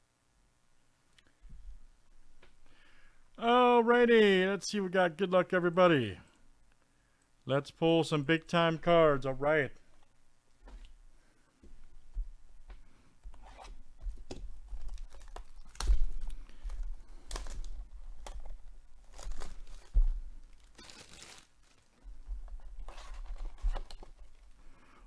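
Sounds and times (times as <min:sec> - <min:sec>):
plastic wrap tearing and crinkling: 0:14.8 - 0:22.1.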